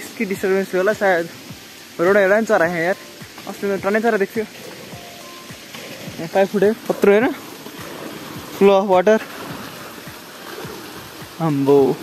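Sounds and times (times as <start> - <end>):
background music: 0.0 - 12.0
steady hiss: 0.0 - 12.0
man talking: 2.0 - 4.5, 6.1 - 7.4, 8.6 - 9.3, 11.4 - 12.0.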